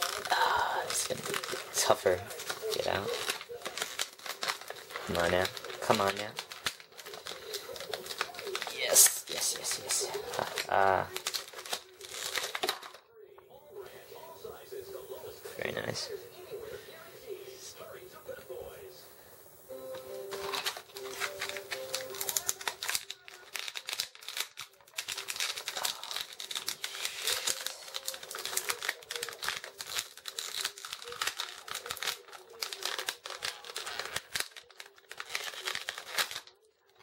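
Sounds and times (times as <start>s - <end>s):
plastic packaging crinkling: 0.0s - 13.1s, 19.5s - 37.0s.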